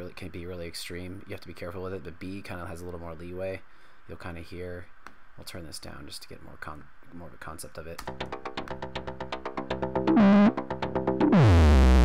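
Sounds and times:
gritty low synth drone: 9.8s - 12.0s
synth burst falling in pitch: 10.0s - 12.0s.

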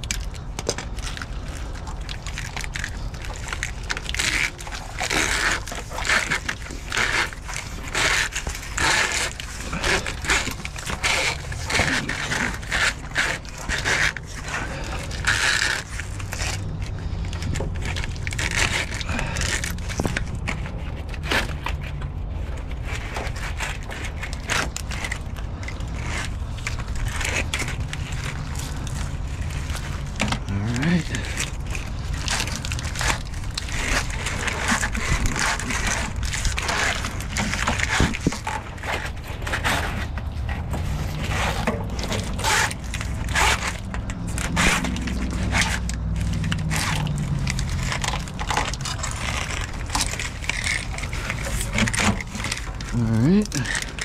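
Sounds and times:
plastic tubing crackling and scraping: 0.0s - 54.0s.

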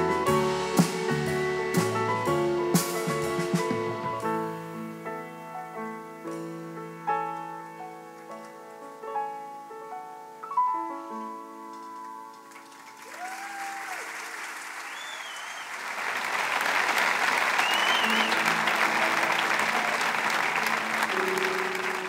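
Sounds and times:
audience applauding: 12.3s - 22.0s
cheers and whistles: 13.0s - 16.0s, 17.4s - 20.6s.

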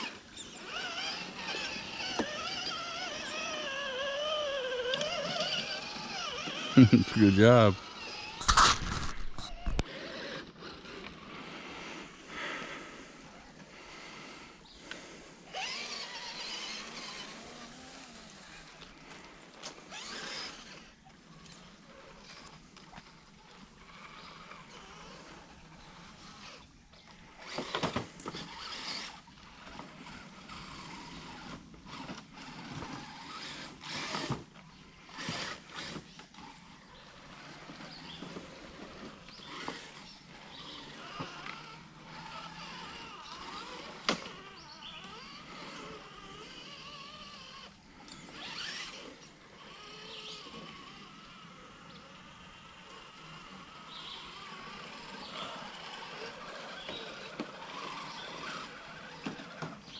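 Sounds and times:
electric motors whining: 0.0s - 59.9s.

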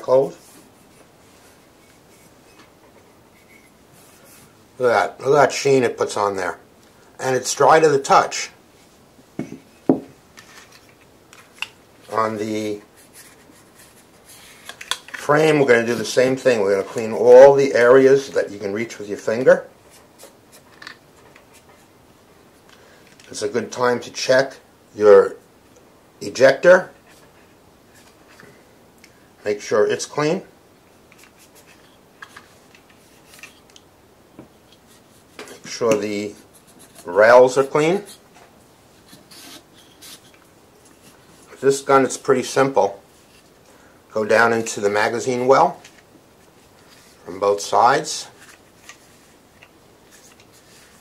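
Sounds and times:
cloth rubbing on pistol: 34.7s - 43.5s
fingertips rubbing on pistol frame: 39.0s - 41.2s.

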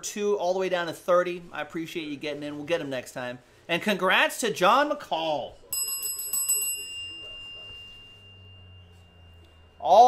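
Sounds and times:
faint low hum: 5.4s - 10.0s
small metal bell ringing: 5.7s - 10.0s.

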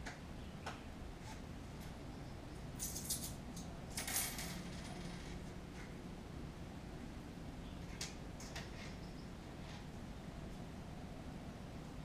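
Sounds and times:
faint low room hum: 0.0s - 12.0s
clicks and clinks of objects: 2.8s - 5.4s.

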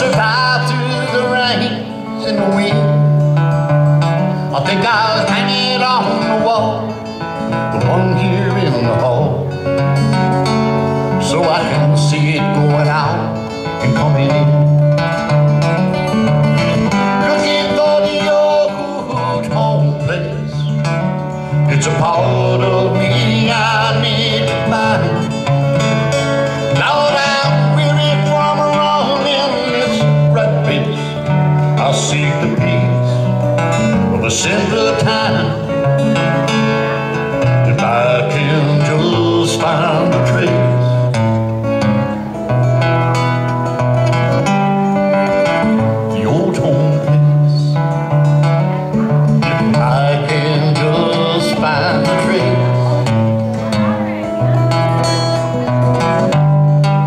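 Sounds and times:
acoustic guitar: 0.0s - 57.0s
bass line: 0.0s - 57.0s.

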